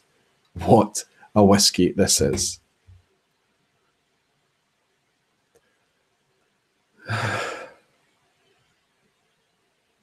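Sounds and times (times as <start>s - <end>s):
man exhaling sigh: 7.0s - 7.8s.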